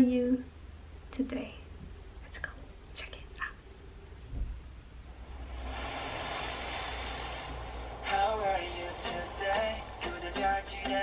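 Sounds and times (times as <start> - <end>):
steady rushing hiss: 5.0 - 11.0.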